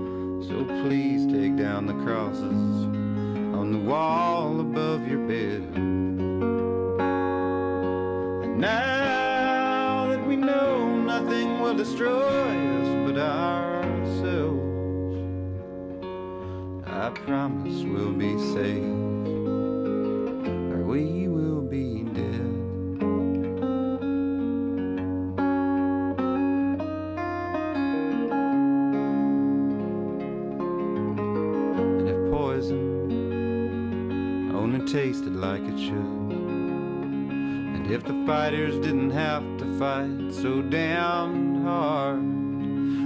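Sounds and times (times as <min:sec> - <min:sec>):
guitar ringing chords: 0:00.0 - 0:43.0
wordless vocal notes: 0:08.2 - 0:15.4, 0:16.4 - 0:19.4, 0:37.4 - 0:43.0.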